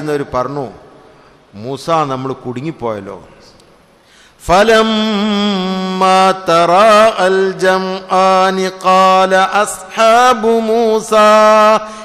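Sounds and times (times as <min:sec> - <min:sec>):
man chanting: 0:04.4 - 0:12.0.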